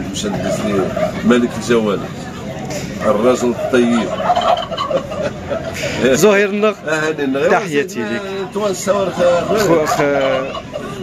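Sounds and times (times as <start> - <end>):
turkeys gobbling: 0.0 - 11.0.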